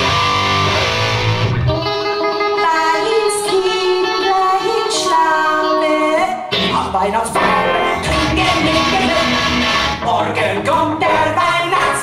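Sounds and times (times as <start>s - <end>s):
electric guitar: 0.0s - 12.0s.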